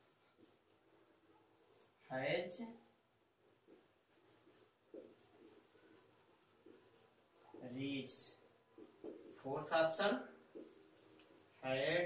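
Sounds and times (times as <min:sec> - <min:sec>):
marker scratching on whiteboard: 0:03.5 - 0:09.7, 0:10.4 - 0:11.4
marker tapping whiteboard: 0:08.8 - 0:09.4, 0:10.5 - 0:11.0.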